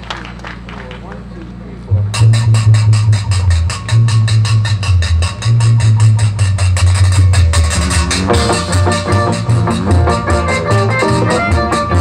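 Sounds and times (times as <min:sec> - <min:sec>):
strong bass line: 0:01.4 - 0:12.0
live jazz band playing: 0:02.0 - 0:12.0.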